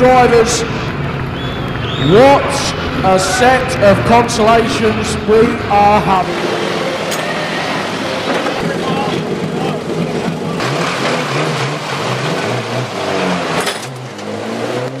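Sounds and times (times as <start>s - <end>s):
crowd noise: 0.0s - 12.9s
tractor engine running: 0.0s - 15.0s
indistinct voices: 1.8s - 10.8s.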